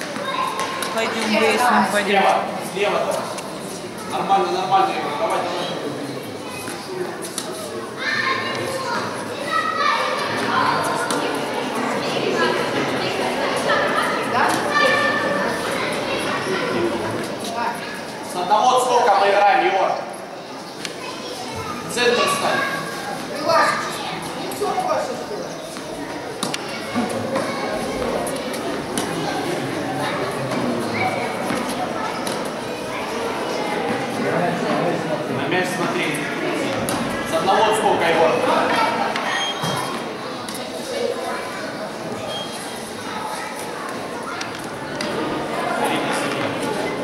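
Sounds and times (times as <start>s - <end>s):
children chattering in a hall: 0.0s - 47.0s.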